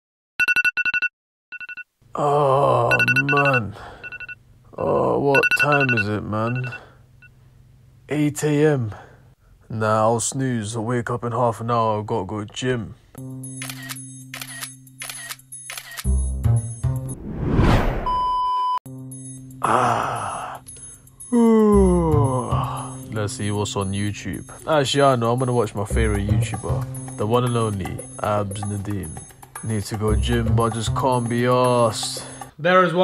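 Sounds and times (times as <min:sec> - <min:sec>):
alarm beeping: 0:02.9 - 0:04.4, 0:05.3 - 0:06.8.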